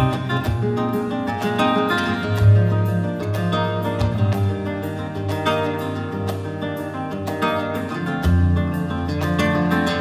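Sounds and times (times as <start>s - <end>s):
flamenco guitar plucking: 0.0s - 10.0s.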